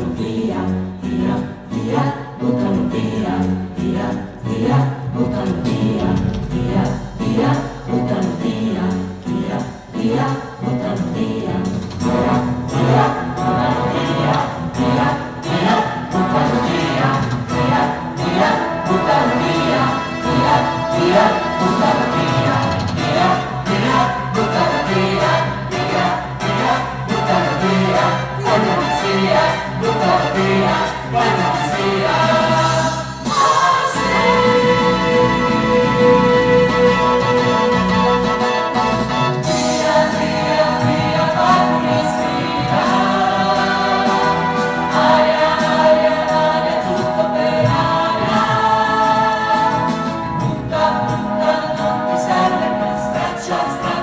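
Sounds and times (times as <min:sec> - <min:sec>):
chorus singing held notes: 0:00.0 - 0:54.0
instrumental accompaniment: 0:00.0 - 0:54.0.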